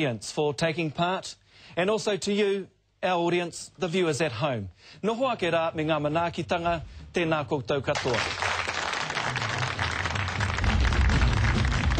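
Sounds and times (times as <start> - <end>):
audience applauding: 8.0 - 11.9
music with heavy bass: 10.3 - 11.9.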